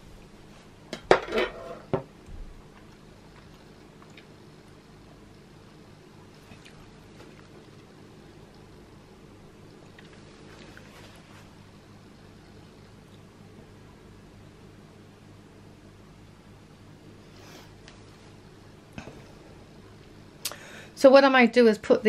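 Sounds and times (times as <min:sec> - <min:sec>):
faint room hum: 0:00.0 - 0:22.0.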